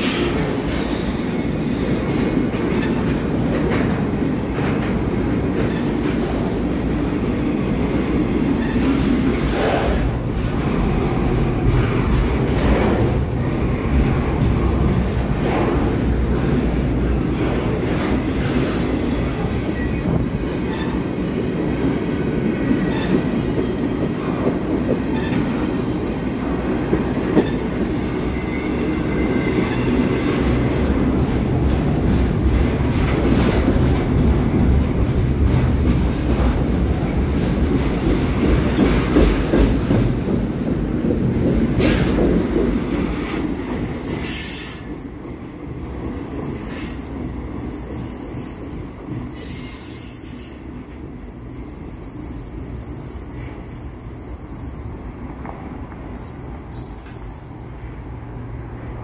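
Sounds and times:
freight train rumbling past: 0:00.0 - 0:59.0
steel wheels squealing on rail: 0:05.4 - 0:06.5, 0:08.4 - 0:10.2, 0:18.4 - 0:22.0, 0:22.6 - 0:24.4, 0:25.0 - 0:25.8, 0:26.4 - 0:30.5, 0:41.8 - 0:55.2, 0:56.1 - 0:57.8.

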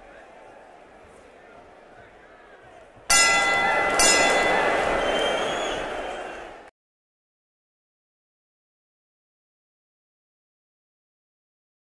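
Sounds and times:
sharp hits with ringing tones: 0:03.1 - 0:04.8.

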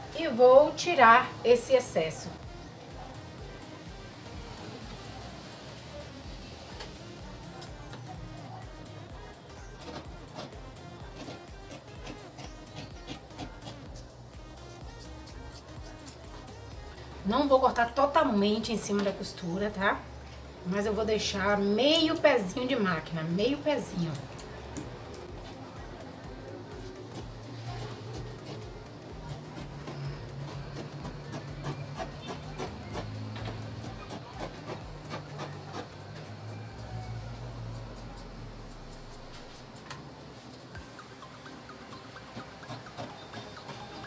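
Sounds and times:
scissors snipping fabric: 0:09.8 - 0:14.1, 0:14.7 - 0:16.5, 0:27.1 - 0:28.7, 0:29.3 - 0:36.0.

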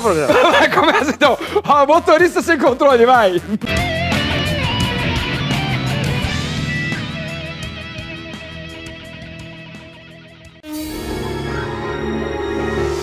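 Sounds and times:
electric guitar music: 0:03.7 - 0:13.0.

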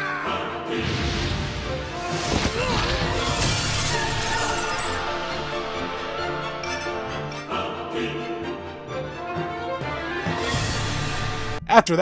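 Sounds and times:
music: 0:00.0 - 0:12.0
glass shattering: 0:02.7 - 0:05.5.

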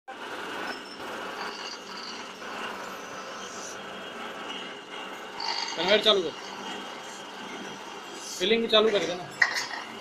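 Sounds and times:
rotary turntable machine running: 0:00.1 - 0:10.0
glass bottles clinking: 0:08.9 - 0:09.9.

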